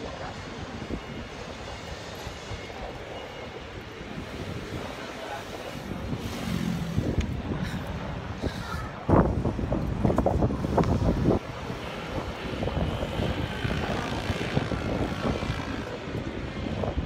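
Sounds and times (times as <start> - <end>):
traffic engine drone: 0.0 - 17.0
wind rumbling on microphone: 0.0 - 17.0.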